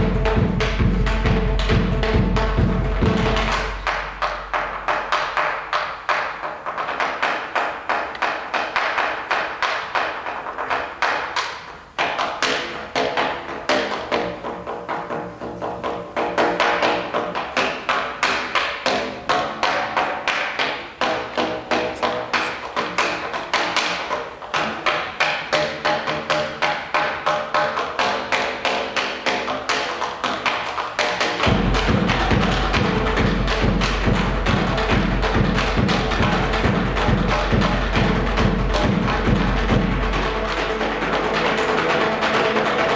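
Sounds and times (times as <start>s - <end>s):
drum hits: 0.0s - 11.3s, 31.2s - 42.9s.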